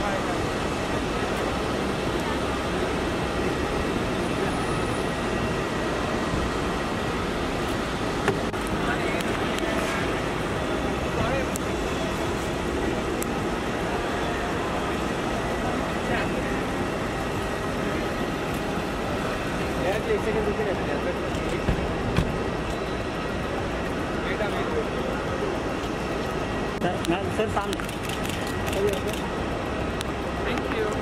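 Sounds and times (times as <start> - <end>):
traffic noise: 0.0 - 31.0.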